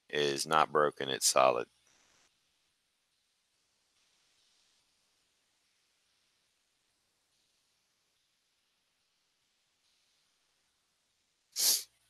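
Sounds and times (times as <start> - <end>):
sharp breath through the nose: 11.6 - 11.8.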